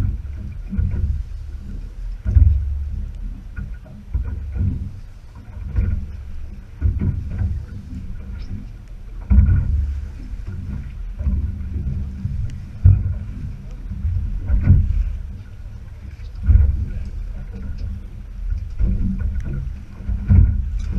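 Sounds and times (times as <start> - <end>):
low thumps: 0.0 - 20.9
steady rumble: 0.0 - 20.9
waves slapping boat hull: 0.0 - 20.9
wind buffeting microphone: 0.0 - 20.9.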